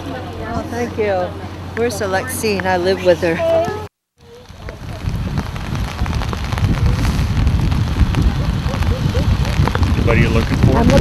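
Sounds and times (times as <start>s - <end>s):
rain falling: 0.0s - 11.0s
wind buffeting microphone: 0.0s - 11.0s
raindrops ticking: 3.6s - 11.0s.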